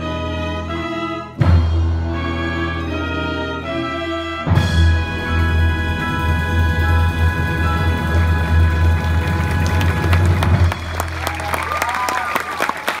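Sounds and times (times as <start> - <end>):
timpani roll: 4.3 - 11.1
audience applause: 8.2 - 13.0
audience cheering: 8.7 - 13.0.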